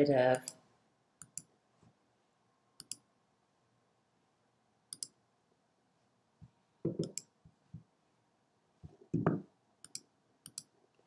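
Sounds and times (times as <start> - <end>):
computer mouse clicks: 0.3 - 0.6, 1.2 - 1.5, 2.8 - 3.0, 4.9 - 5.2, 7.0 - 7.4, 9.8 - 10.7.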